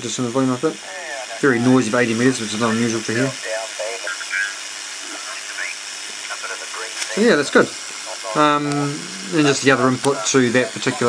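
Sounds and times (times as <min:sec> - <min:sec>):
radio receiver hiss and static: 0:00.0 - 0:11.0
faint radio signal snatches: 0:02.5 - 0:11.0.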